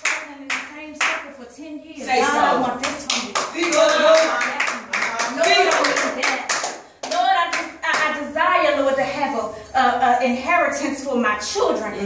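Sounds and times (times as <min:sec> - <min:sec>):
rhythmic hand clapping: 0:00.0 - 0:01.3, 0:02.7 - 0:08.3
woman preaching excitedly: 0:00.0 - 0:12.0.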